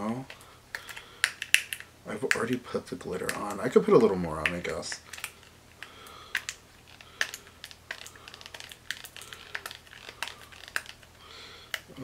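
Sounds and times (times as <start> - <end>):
packaging crinkling and clicking: 0.0 - 11.9.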